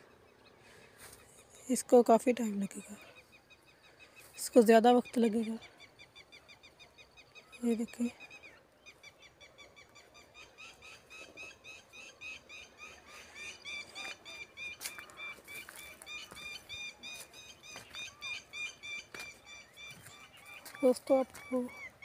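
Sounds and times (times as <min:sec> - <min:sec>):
birds chirping: 0:00.0 - 0:22.0.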